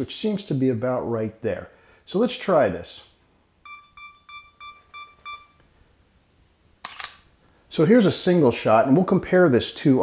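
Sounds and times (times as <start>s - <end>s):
camera shutter click: 6.8s - 7.3s.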